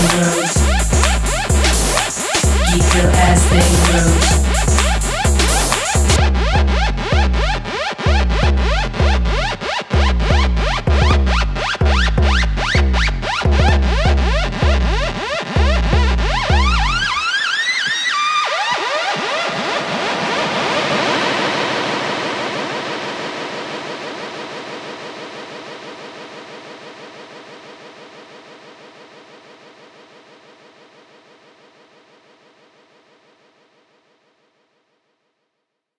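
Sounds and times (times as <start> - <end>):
electronic synth music: 0.0 - 19.7
noisy pulsing synth wash: 0.0 - 33.9.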